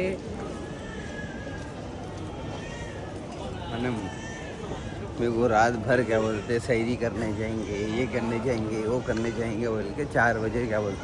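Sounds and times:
airport terminal background noise: 0:00.0 - 0:11.0.

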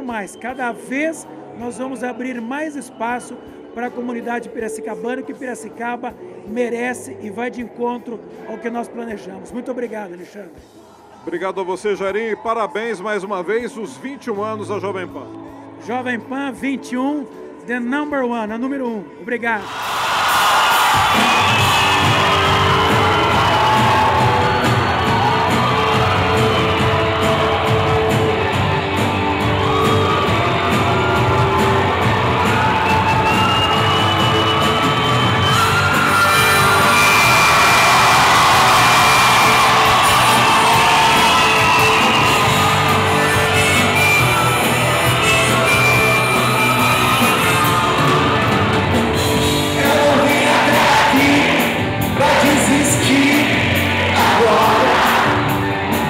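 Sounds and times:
crowd shouting and cheering: 0:10.9 - 0:14.6, 0:19.6 - 0:56.0
drums: 0:19.6 - 0:56.0
live rock band playing: 0:20.8 - 0:56.0
electric bass: 0:21.7 - 0:50.3.

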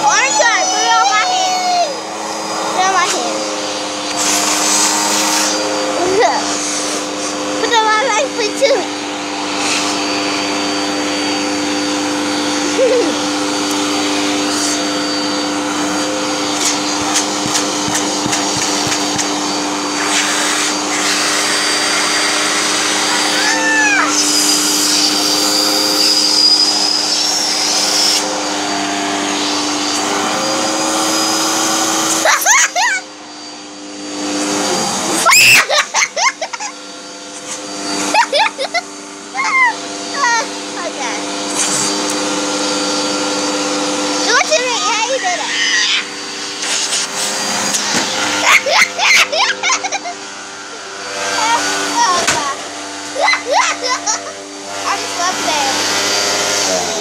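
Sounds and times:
vacuum cleaner motor humming: 0:00.0 - 0:57.0.

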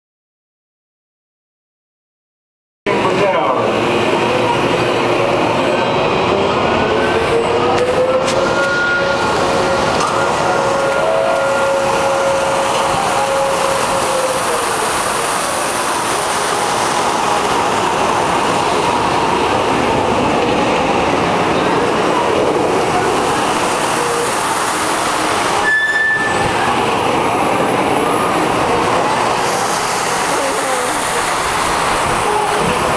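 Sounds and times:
loud rushing noise: 0:02.9 - 0:32.9.

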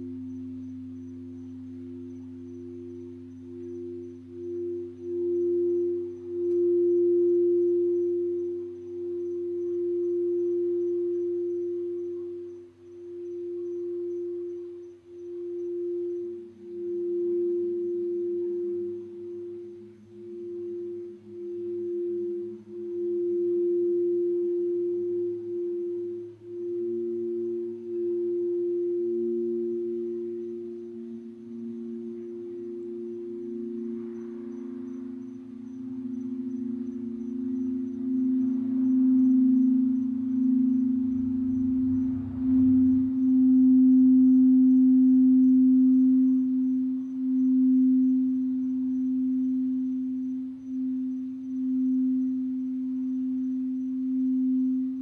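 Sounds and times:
singing bowl tone: 0:00.0 - 0:55.0.

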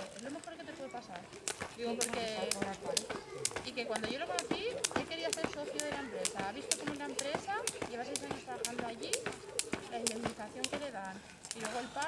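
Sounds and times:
jump rope slapping dirt: 0:00.0 - 0:12.0.

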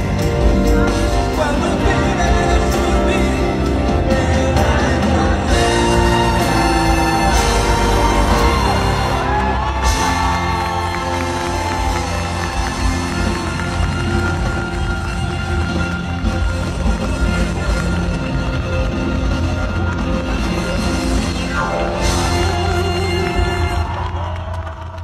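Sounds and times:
crowd cheering and clapping: 0:00.0 - 0:25.0
live band playing: 0:00.0 - 0:25.0
man singing long notes: 0:01.1 - 0:12.5, 0:22.0 - 0:24.5.

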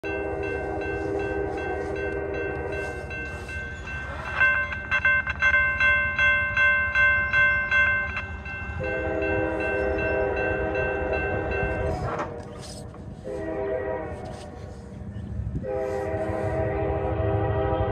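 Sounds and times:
distant locomotive horn blast: 0:00.0 - 0:03.5, 0:08.8 - 0:17.9
crossing bell ringing rapidly: 0:00.0 - 0:12.0.

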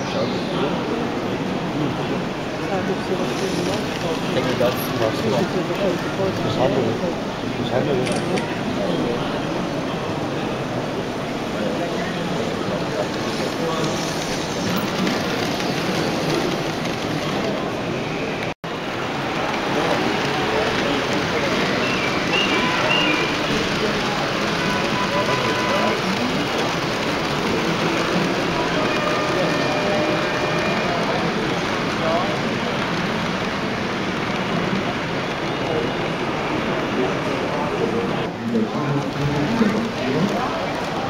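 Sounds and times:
busy hall background noise: 0:00.0 - 0:41.0
many voices chattering: 0:00.0 - 0:41.0
model train rumbling on track: 0:00.0 - 0:41.0.

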